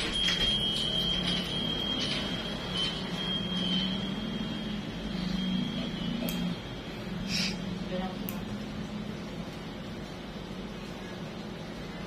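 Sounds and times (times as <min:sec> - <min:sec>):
high-pitched whine: 0:00.0 - 0:12.0
steady background hum: 0:00.0 - 0:12.0.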